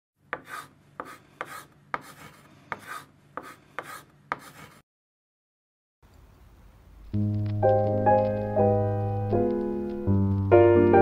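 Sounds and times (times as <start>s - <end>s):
short scraping rasp: 0.4s - 4.8s.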